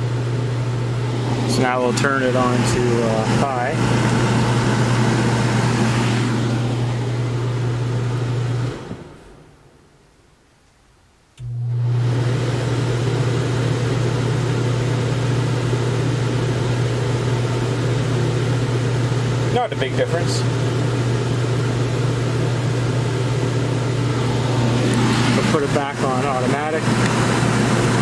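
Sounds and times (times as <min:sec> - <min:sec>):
air conditioner fan humming: 0:00.0 - 0:10.3, 0:10.9 - 0:28.0.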